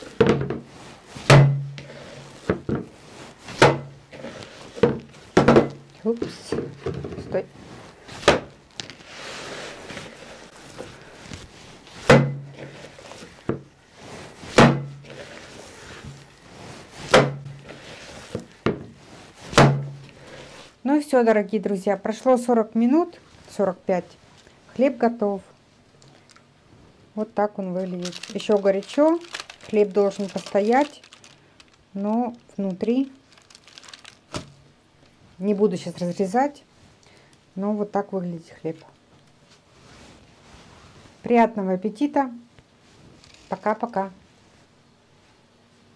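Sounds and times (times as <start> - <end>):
baking paper crinkling: 0.0 - 19.6, 27.4 - 34.6
dough kneading noise: 0.0 - 20.7, 27.4 - 33.3
dough thumping into bowl: 1.2 - 1.9, 3.5 - 3.9, 12.0 - 12.6, 14.6 - 15.0, 17.1 - 17.6, 19.5 - 20.0
sharp knock: 1.3 - 1.7.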